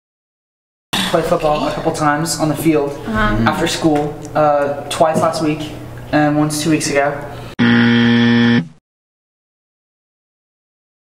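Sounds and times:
wrong answer buzzer: 7.6 - 8.8.

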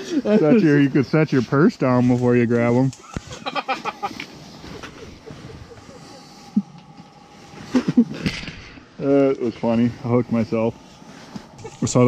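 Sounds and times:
low steady hiss: 0.0 - 12.0
bursts of laughter: 3.0 - 4.3, 4.9 - 6.8, 7.6 - 8.3.

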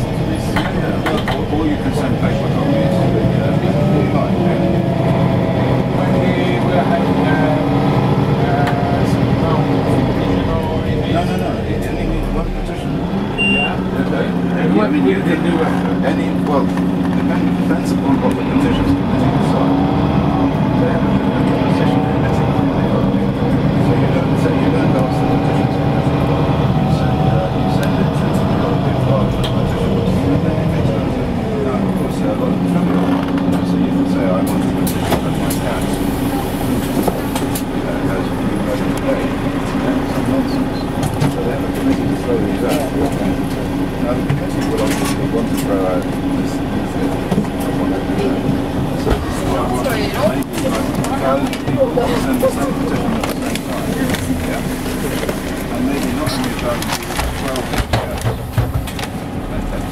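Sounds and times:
people's voices: 0.0 - 59.9
vehicle engine humming: 0.0 - 59.9.

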